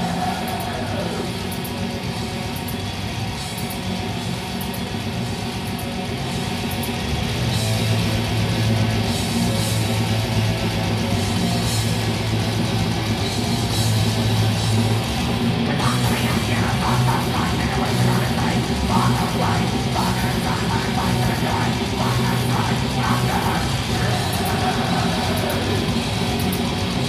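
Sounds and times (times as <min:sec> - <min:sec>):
metal band playing live: 0:00.0 - 0:27.0.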